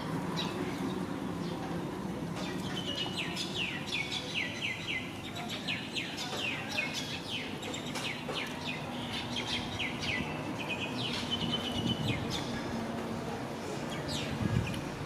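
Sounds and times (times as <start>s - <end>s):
birds chirping: 0.3s - 12.9s.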